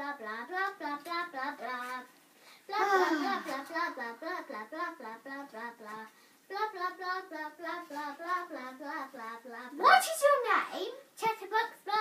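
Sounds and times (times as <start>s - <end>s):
child singing: 0.0s - 2.1s, 2.7s - 12.0s.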